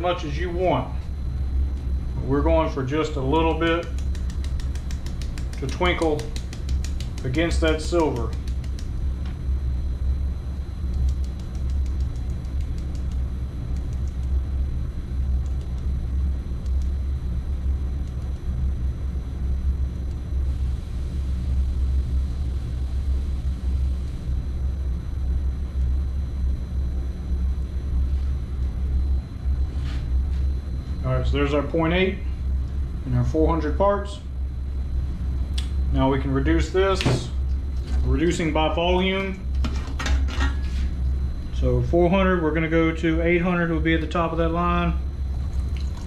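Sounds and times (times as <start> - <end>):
machinery rumbling: 0.0 - 46.0
light ticks of flakes tapped: 3.8 - 8.9.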